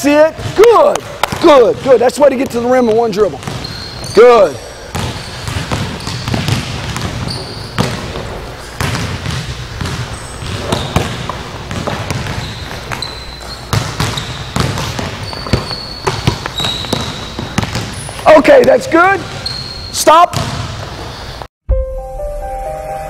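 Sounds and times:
basketballs bouncing on hardwood: 0.3 - 21.5
sneaker squeaks: 1.3 - 21.5.

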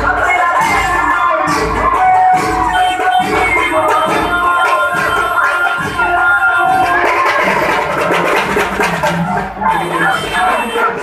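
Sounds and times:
barrel drums beating: 0.0 - 11.0
crowd: 0.0 - 11.0.

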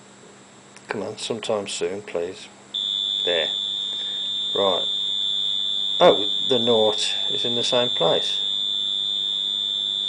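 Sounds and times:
electric buzzer steady tone: 2.7 - 10.0.

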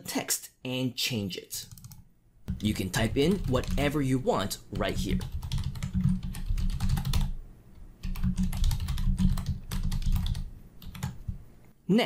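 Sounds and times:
computer keyboard typing: 1.6 - 7.4, 8.0 - 11.4.

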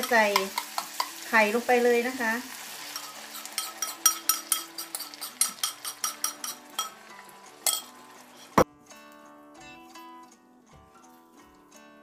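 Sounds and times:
metal spoon clinking ceramic bowl: 2.9 - 8.6.

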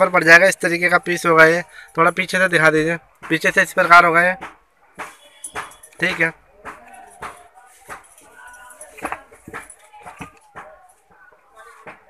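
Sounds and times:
faint voices: 0.0 - 12.0
plastic busts clicking and knocking: 2.2 - 12.0.

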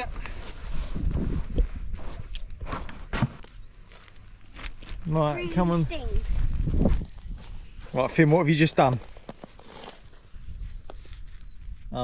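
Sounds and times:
footsteps crunching on shells: 1.6 - 11.6.

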